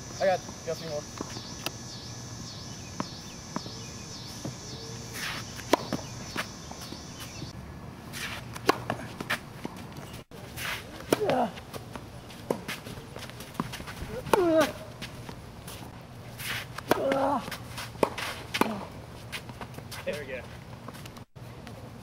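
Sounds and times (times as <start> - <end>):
tennis ball bouncing on court: 2.9 - 7.5, 8.5 - 10.0
tennis ball struck by rackets: 4.4 - 7.5, 8.1 - 9.8.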